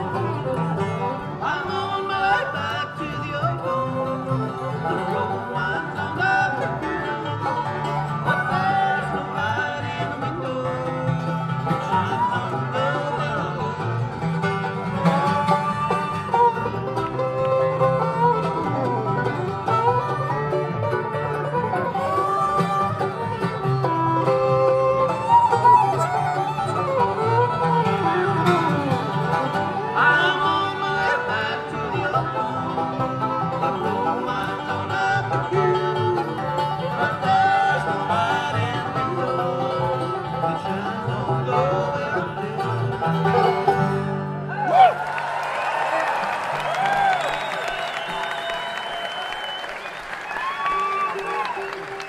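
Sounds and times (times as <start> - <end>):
bluegrass band playing: 0.0 - 52.0.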